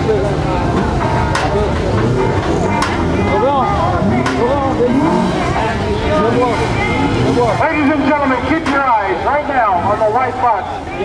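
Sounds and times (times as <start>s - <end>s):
vehicle engine running: 0.0s - 11.0s
voices talking: 0.0s - 11.0s.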